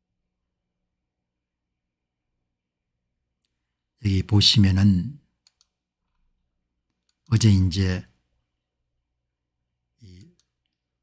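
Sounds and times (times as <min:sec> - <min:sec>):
faint click: 0:05.4 - 0:05.7.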